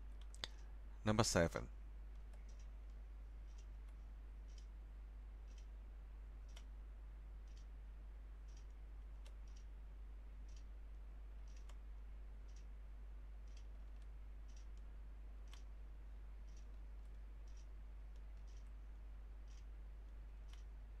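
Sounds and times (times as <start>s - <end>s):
low electrical hum: 0.0s - 21.0s
faint ticking: 2.0s - 21.0s.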